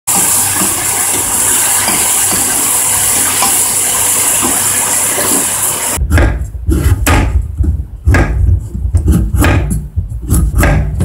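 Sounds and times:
food sizzling in frying pan: 0:00.1 - 0:06.0.

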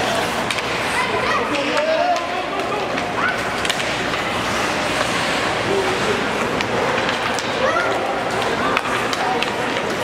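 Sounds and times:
crowd hubbub: 0:00.0 - 0:10.0
hockey sticks and puck clacking: 0:00.0 - 0:10.0
skates scraping ice: 0:00.0 - 0:10.0.

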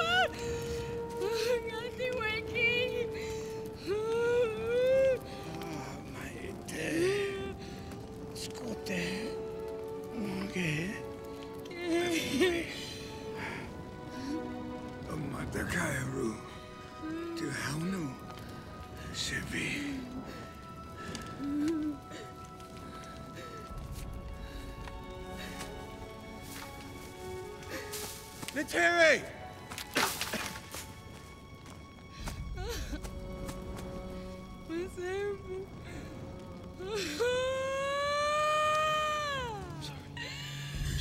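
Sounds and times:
orchestral music sustained notes: 0:00.0 - 0:41.0
long wailing cry: 0:36.2 - 0:40.6.

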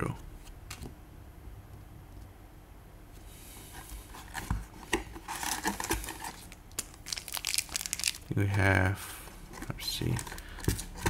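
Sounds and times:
foil wrapper crinkling: 0:05.3 - 0:08.4.

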